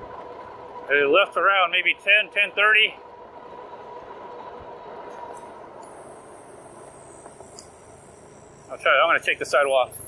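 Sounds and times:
wind and tyre noise: 0.0 - 10.0
faint electric motor whine: 2.0 - 10.0
thin high steady tone: 3.7 - 10.0.

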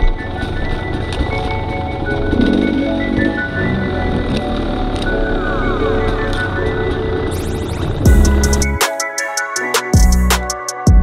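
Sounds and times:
background music: 0.0 - 11.0
dirt bike engine running: 7.9 - 8.8.

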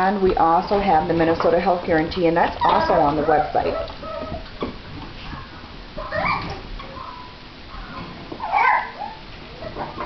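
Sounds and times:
puppies whimpering and yipping: 2.6 - 10.0.

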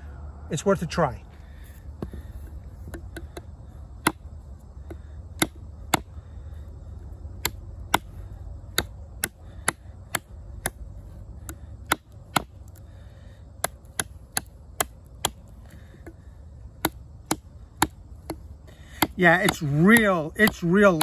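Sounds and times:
knife chopping into wood: 2.0 - 6.1, 7.4 - 10.8, 11.4 - 12.6, 13.6 - 16.2, 16.8 - 21.0.

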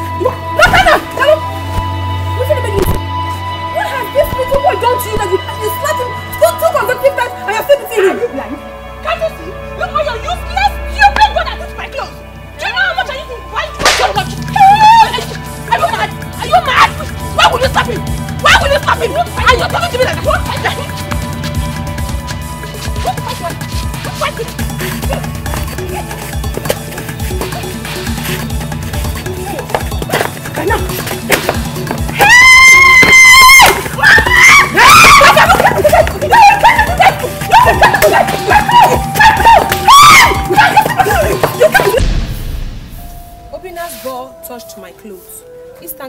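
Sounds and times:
low background music: 0.0 - 46.0
whip-like crack: 13.8 - 14.2, 31.3 - 31.7
high-pitched screaming: 32.1 - 41.4.

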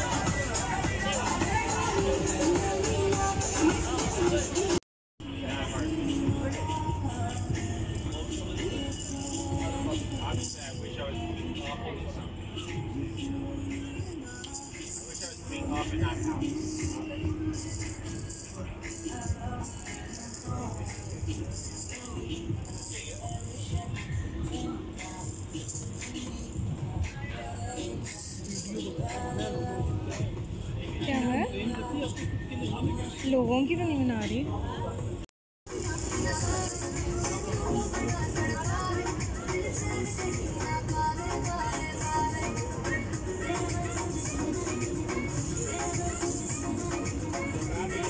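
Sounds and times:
background music: 0.0 - 48.0
plastic rattle shaking: 8.9 - 9.5, 17.5 - 23.4, 28.1 - 28.8, 35.7 - 37.4
people talking: 27.1 - 30.2, 31.0 - 35.0.

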